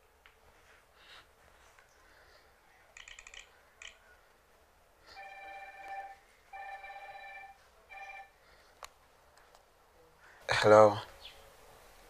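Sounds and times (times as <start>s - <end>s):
phone ringing: 5.0s - 8.4s.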